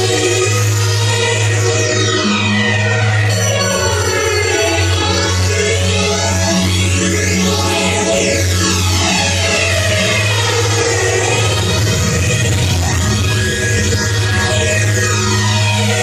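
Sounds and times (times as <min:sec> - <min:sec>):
heavy bass: 0:00.0 - 0:16.0
synth lines sweeping in pitch: 0:00.0 - 0:16.0
hardstyle dance music: 0:07.6 - 0:16.0.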